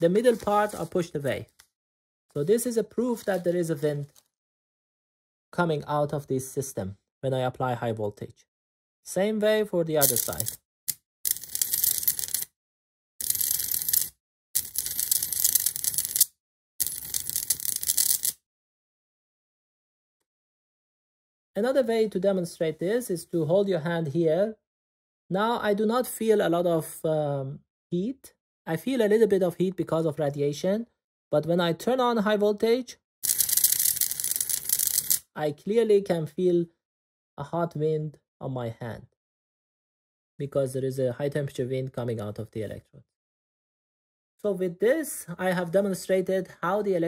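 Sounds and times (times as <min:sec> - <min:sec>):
high-voltage discharge crackling: 0:10.0 - 0:10.6.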